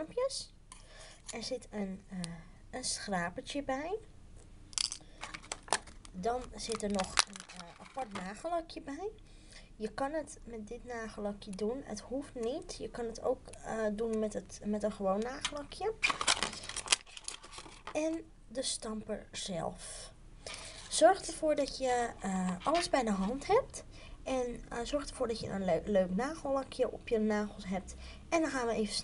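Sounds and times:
plastic packaging crinkling: 0:04.8 - 0:08.4, 0:16.0 - 0:18.0.

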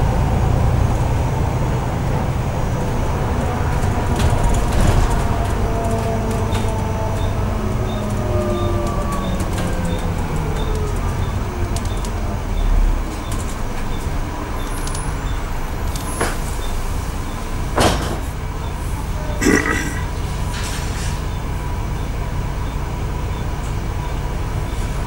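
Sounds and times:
bus engine rumble: 0:00.0 - 0:25.0.

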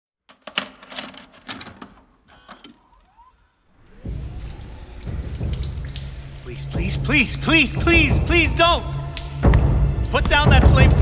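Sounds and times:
low rumble: 0:03.8 - 0:11.0.

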